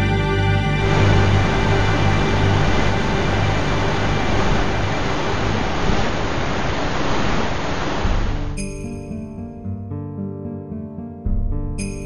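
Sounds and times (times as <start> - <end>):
music with sustained notes: 0.0 - 6.8, 8.1 - 12.0
waterfall rushing: 0.1 - 8.4.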